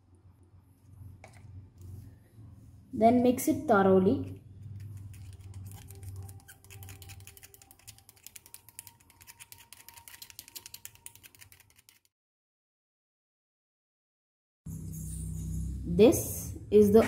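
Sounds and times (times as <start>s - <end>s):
spoon stirring in plastic cup: 4.3s - 12.1s.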